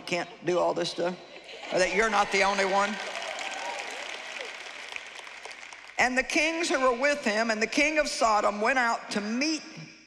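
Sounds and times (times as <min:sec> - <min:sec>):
audience applause: 0:01.7 - 0:06.8.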